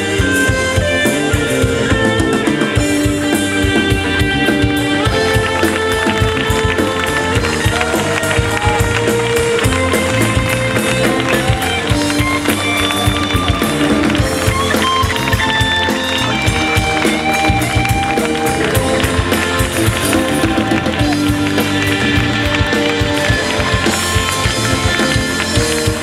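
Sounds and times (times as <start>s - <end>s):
electric guitar bending notes: 0.0s - 26.0s
live rock band playing: 0.0s - 26.0s.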